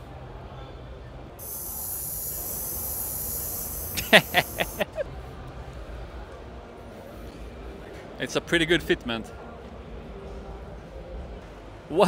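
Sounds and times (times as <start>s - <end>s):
high-pitched hiss: 1.4s - 5.0s.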